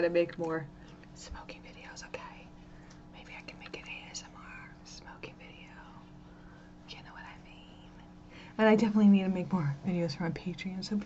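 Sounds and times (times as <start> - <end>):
steady low hum: 0.0 - 11.0
woman whispering: 1.2 - 6.1, 6.9 - 8.0.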